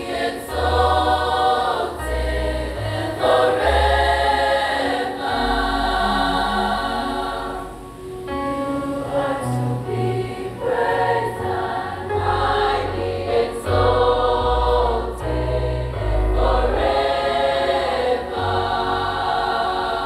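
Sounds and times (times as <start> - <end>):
choir singing: 0.0 - 20.0.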